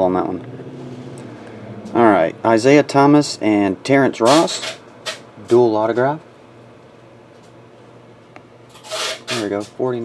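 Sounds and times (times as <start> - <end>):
breathy rush of noise: 0.5 - 1.9.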